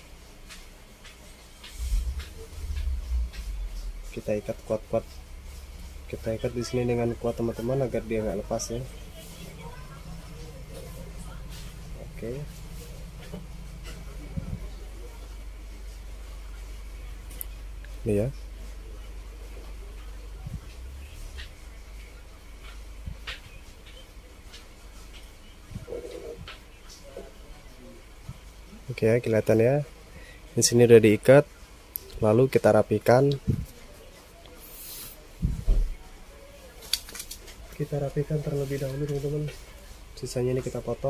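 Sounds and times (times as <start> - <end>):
low hum: 1.5 - 28.8
faint hiss: 34.5 - 35.4.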